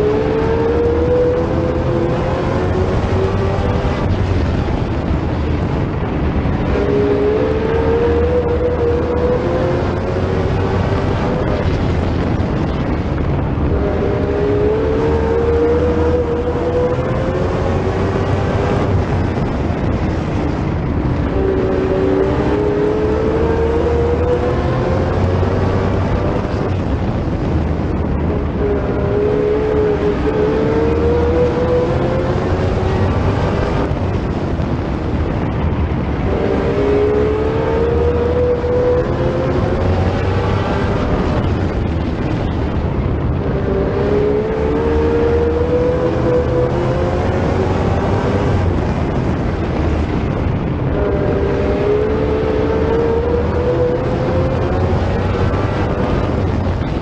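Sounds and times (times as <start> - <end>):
racing car engine: 0.0 - 57.0
road and wind noise: 0.0 - 57.0.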